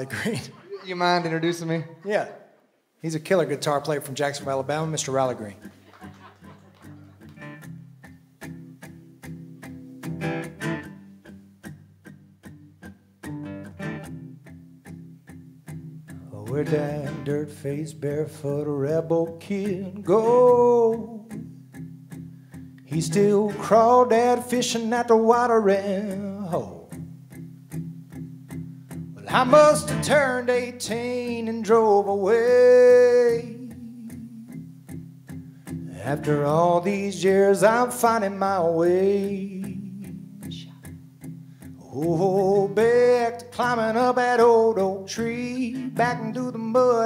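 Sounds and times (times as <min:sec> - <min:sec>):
acoustic guitars strumming: 0:03.8 - 0:47.0.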